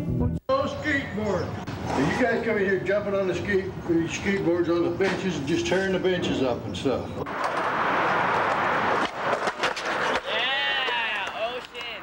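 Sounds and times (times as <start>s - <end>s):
skateboard clacks: 7.3s - 12.0s.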